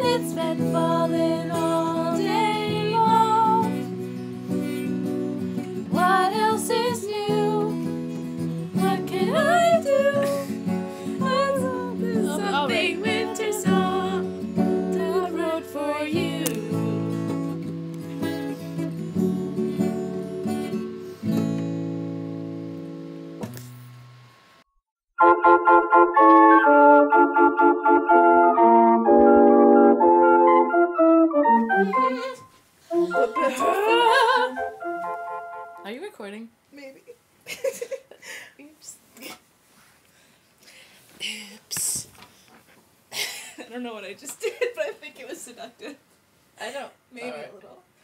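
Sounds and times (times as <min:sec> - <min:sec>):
acoustic guitar strumming: 0:00.0 - 0:24.5
people singing along: 0:05.9 - 0:07.6, 0:08.8 - 0:10.5, 0:11.2 - 0:17.0, 0:33.0 - 0:34.7.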